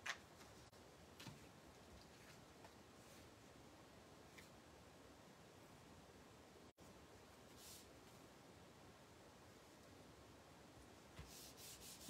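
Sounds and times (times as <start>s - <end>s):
hands rubbing on cardstock: 11.2s - 12.0s.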